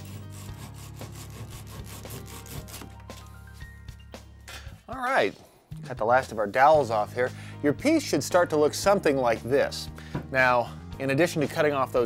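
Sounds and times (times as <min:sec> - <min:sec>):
hand saw cutting wood: 0:00.0 - 0:03.0.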